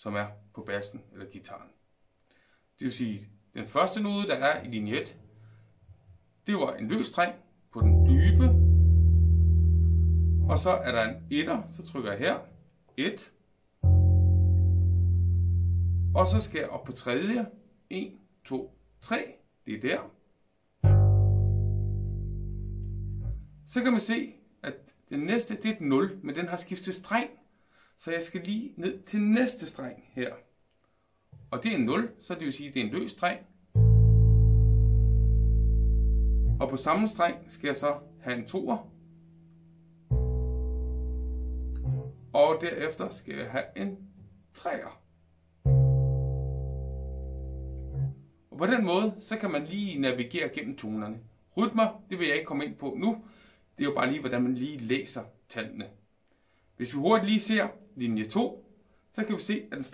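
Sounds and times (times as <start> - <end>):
bass guitar note ringing: 7.8 - 12.0, 13.8 - 16.8, 20.8 - 23.8, 33.8 - 42.4, 45.6 - 48.3.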